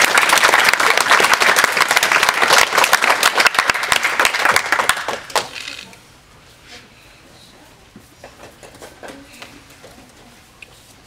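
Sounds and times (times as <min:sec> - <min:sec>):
faint murmur of hall: 0:00.0 - 0:11.0.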